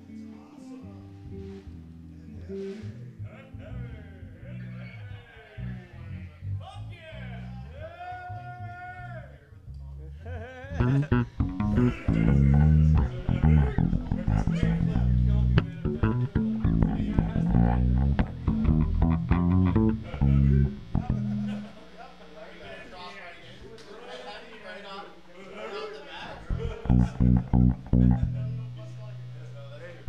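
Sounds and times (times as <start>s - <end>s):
electric bass guitar notes: 0.9s - 8.4s, 10.7s - 22.3s, 26.4s - 30.0s.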